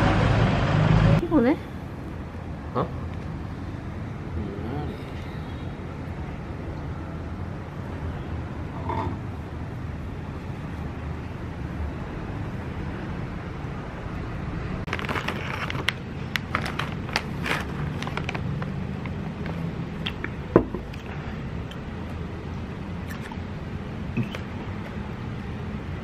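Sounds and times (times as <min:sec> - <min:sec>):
low background noise: 0:00.0 - 0:26.0.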